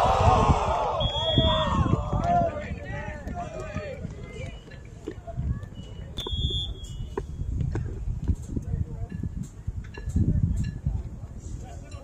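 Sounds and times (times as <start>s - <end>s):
crowd rumble: 0.0s - 12.0s
referee's whistle blast: 1.0s - 1.7s, 6.2s - 7.2s.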